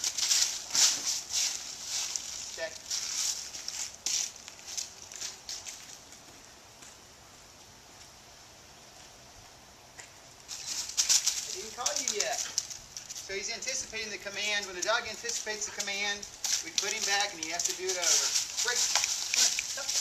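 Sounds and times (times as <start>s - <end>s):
footsteps on dry leaves: 0.0s - 6.4s, 10.5s - 20.0s
faint outdoor background: 0.0s - 20.0s.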